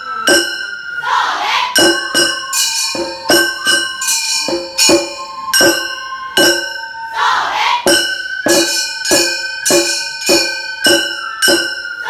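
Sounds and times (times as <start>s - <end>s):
drum beats: 0.1s - 1.0s, 1.7s - 7.0s, 7.8s - 12.0s.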